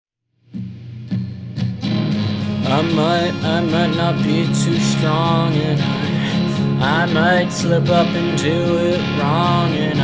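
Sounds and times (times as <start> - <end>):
guitar chords: 0.4 - 10.0.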